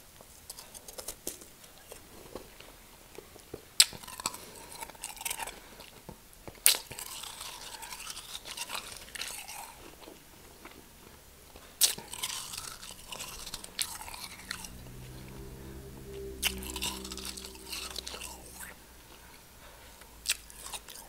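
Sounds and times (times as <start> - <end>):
crunching chews: 0.4 - 2.6, 3.4 - 14.7, 20.0 - 21.0.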